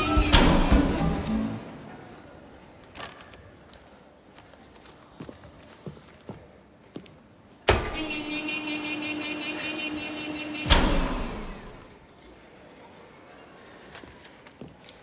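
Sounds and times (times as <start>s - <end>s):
washing machine buzzing hum: 7.7s - 12.0s.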